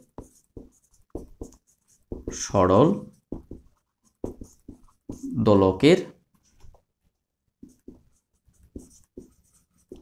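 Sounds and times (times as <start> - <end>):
marker pen writing on whiteboard: 0.0 - 5.8, 7.5 - 10.0
man speaking: 2.3 - 3.2, 5.2 - 6.2.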